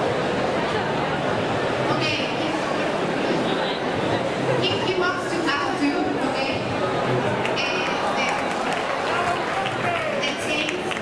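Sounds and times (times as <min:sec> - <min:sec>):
murmur of crowd chatter: 0:00.0 - 0:11.0
people talking: 0:00.6 - 0:06.9, 0:07.5 - 0:08.5, 0:09.1 - 0:11.0.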